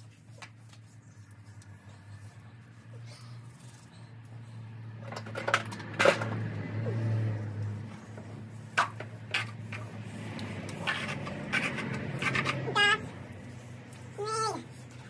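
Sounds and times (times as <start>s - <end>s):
knocks and scrubbing: 4.8s - 15.0s.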